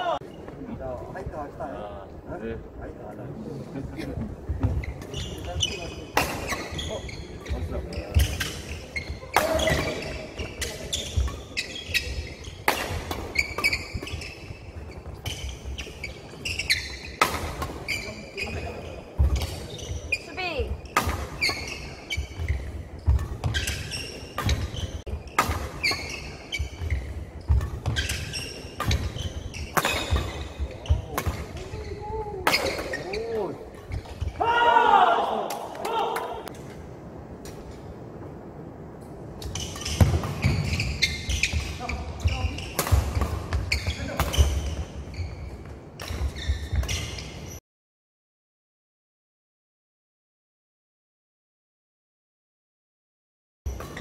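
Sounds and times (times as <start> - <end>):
shoe soles squeaking: 4.4 - 17.2, 17.8 - 34.4, 39.4 - 47.6
rackets striking shuttlecock: 9.3 - 14.2, 25.4 - 30.4.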